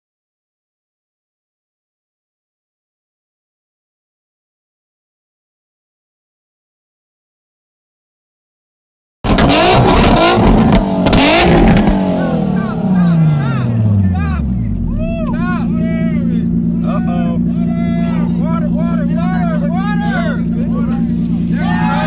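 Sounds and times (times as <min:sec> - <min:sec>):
exhaust crackles: 0:09.3 - 0:22.0
sports car engine revving: 0:09.3 - 0:22.0
voices talking: 0:11.2 - 0:22.0.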